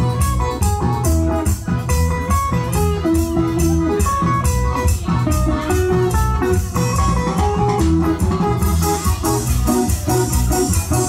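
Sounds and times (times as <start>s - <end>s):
bass: 0.0s - 11.0s
drums with steady beat: 0.0s - 11.0s
guitar melody: 0.0s - 11.0s.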